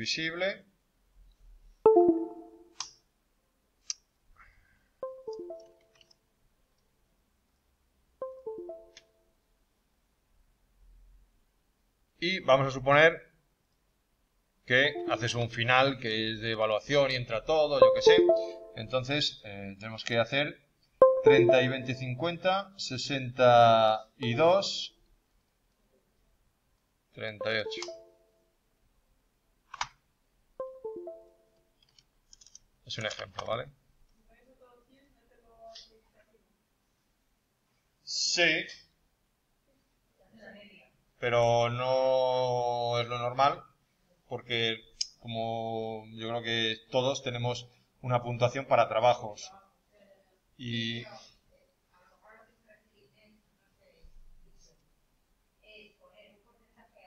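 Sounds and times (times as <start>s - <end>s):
electronic chime notes: 1.9s - 2.7s, 5.0s - 5.8s, 8.2s - 9.0s, 15.0s - 15.4s, 17.8s - 19.1s, 21.0s - 22.3s, 27.4s - 28.2s, 30.6s - 31.4s.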